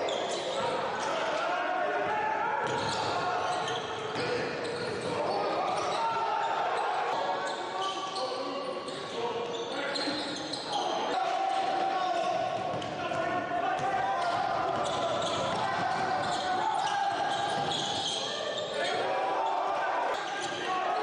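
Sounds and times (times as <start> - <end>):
voices echoing in a hall: 0.0 - 21.0.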